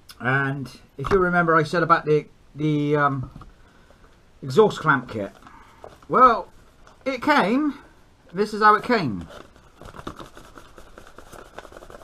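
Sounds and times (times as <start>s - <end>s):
cardboard box being handled: 8.7s - 12.0s.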